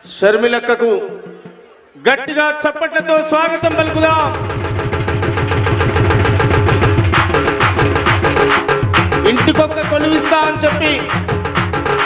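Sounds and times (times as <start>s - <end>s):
man talking: 2.0s - 4.5s, 9.2s - 11.2s
drum fast even beat: 3.6s - 12.0s.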